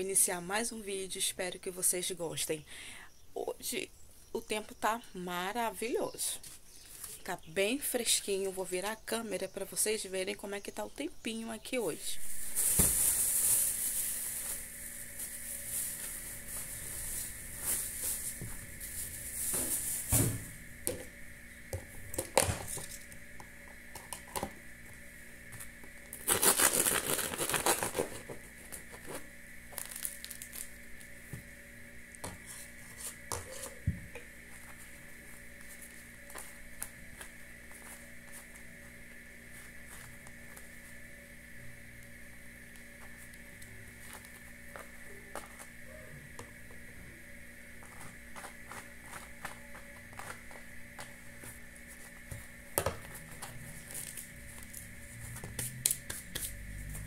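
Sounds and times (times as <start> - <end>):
plastic bag rustling: 12.2 - 20.2, 26.2 - 31.1
background hiss: 12.2 - 20.6
bread crust crackling: 26.1 - 31.2
constant high tone: 44.7 - 47.2.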